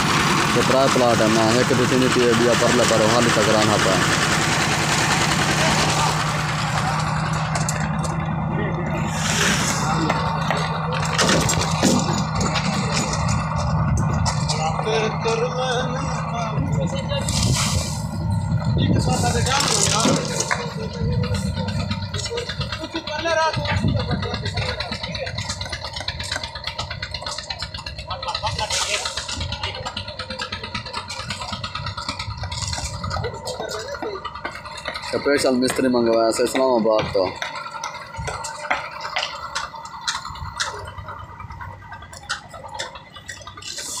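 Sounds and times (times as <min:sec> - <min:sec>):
wheelbarrows tipping wet concrete: 0:00.0 - 0:15.4, 0:18.9 - 0:44.0
concrete mixer engine running: 0:00.0 - 0:44.0
rakes scraping wet concrete: 0:08.9 - 0:13.7, 0:17.0 - 0:18.3, 0:18.9 - 0:21.5, 0:27.5 - 0:29.9, 0:42.1 - 0:44.0.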